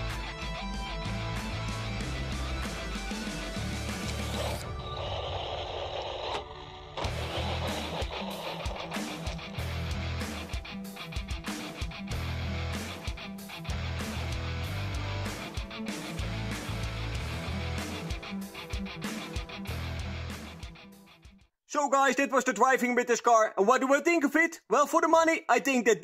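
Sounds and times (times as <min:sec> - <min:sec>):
background music with steady beat: 0:00.0 - 0:04.7, 0:07.0 - 0:21.4.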